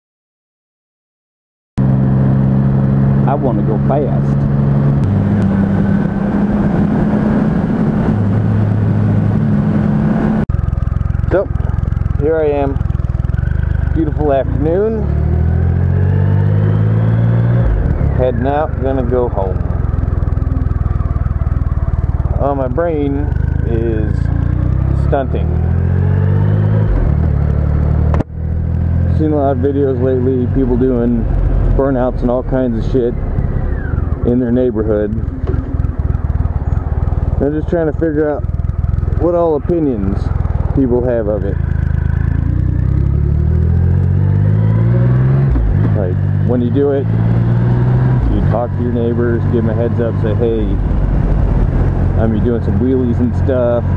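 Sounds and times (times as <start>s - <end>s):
motorcycle engine running: 1.8s - 53.9s.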